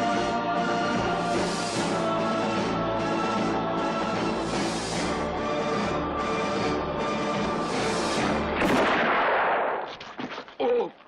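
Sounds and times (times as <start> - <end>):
music: 0.0 - 8.9
loud gunshot with echo: 8.6 - 9.9.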